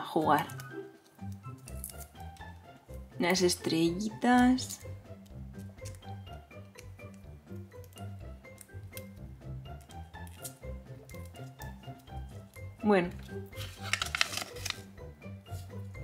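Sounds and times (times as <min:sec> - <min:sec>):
light background music: 0:00.0 - 0:16.0
paper leaflet crackling: 0:13.3 - 0:14.9.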